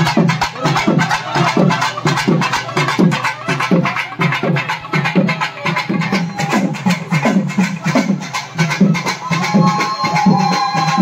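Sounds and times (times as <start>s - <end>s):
bright clattering percussion: 0.0s - 11.0s
drum beaten in steady rhythm: 0.0s - 11.0s.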